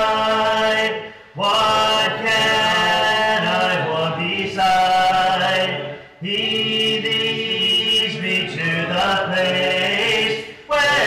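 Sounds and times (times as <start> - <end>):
congregation singing a hymn: 0.0 - 11.0
man leading singing: 0.0 - 11.0.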